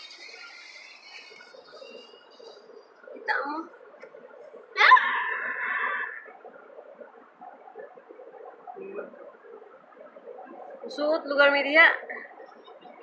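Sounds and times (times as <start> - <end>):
faint background noise: 0.0 - 13.0
high drawn-out cry: 4.8 - 6.3.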